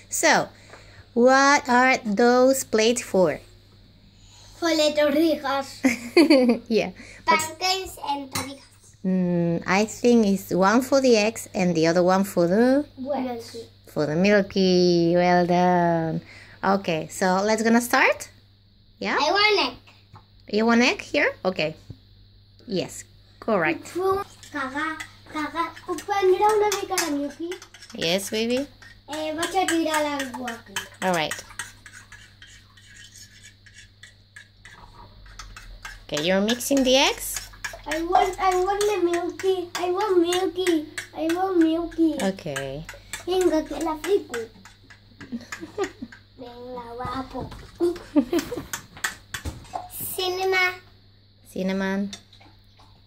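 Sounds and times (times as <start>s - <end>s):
young children's voices: 23.9s - 27.6s, 29.1s - 30.8s, 37.9s - 42.3s, 43.2s - 44.6s, 46.4s - 48.0s
fork clicking against ceramic plate: 25.8s - 46.2s.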